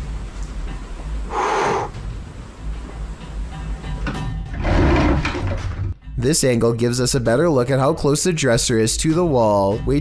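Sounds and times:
low droning music: 0:00.0 - 0:10.0
wooden dresser scraping: 0:04.6 - 0:06.0.

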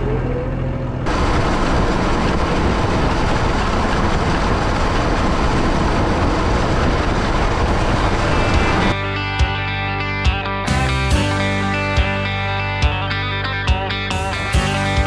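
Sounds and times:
farm vehicle engine rumble: 0:00.0 - 0:15.0
rock music with electric guitar: 0:07.7 - 0:15.0.

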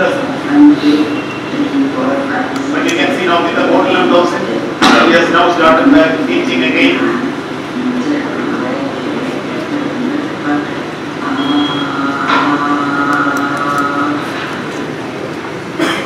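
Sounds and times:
muffled woman's voice over loudspeakers: 0:00.0 - 0:16.0.

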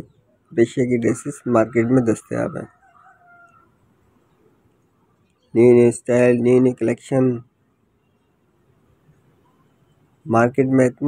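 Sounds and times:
faint brief tone: 0:09.4 - 0:10.2.

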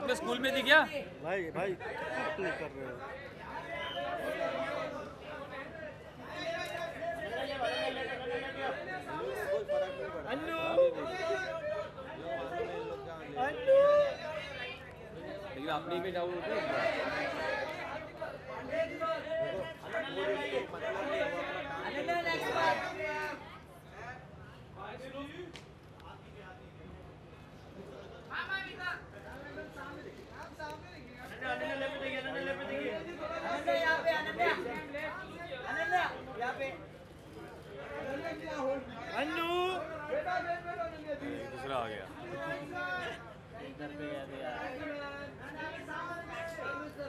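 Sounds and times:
crowd chatter: 0:00.0 - 0:47.0.

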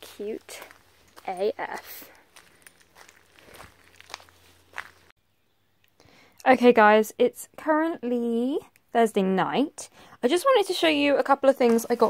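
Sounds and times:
footsteps on gravel: 0:00.0 - 0:05.1.

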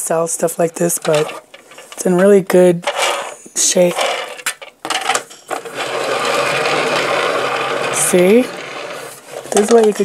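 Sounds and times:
metal turntable whirring: 0:00.1 - 0:10.0.

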